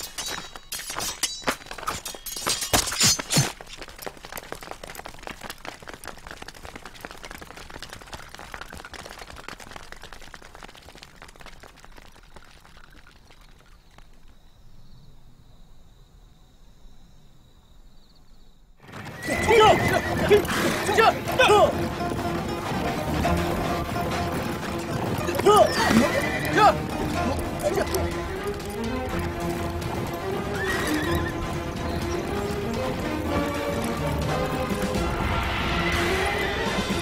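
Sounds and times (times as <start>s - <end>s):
hooves clattering: 0.0s - 14.8s, 18.8s - 37.0s
horses neighing: 18.8s - 37.0s.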